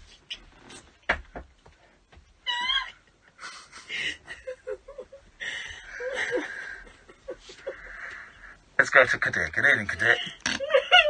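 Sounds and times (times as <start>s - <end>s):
person laughing: 10.1s - 11.0s.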